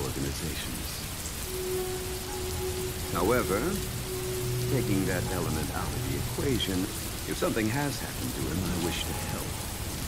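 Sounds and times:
steady rain falling: 0.0s - 10.0s
steady low tone: 1.4s - 10.0s.

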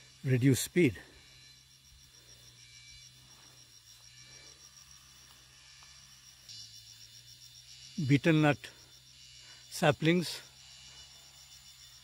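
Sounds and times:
faint insect chirping: 0.0s - 12.0s.

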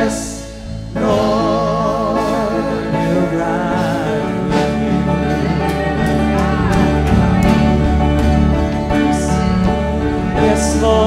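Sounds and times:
deep bass line: 0.0s - 11.0s
guitar: 0.0s - 11.0s
person singing: 0.0s - 11.0s.

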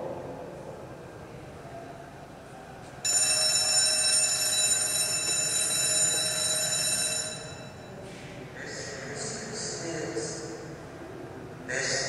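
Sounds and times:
mechanical alarm clock ringing: 3.1s - 7.9s.

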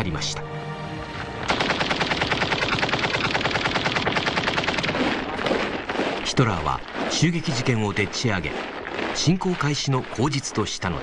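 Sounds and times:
machine-gun burst: 1.5s - 6.0s.

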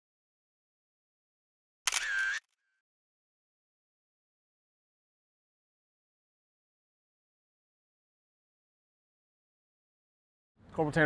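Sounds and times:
camera shutter click: 1.9s - 2.5s.

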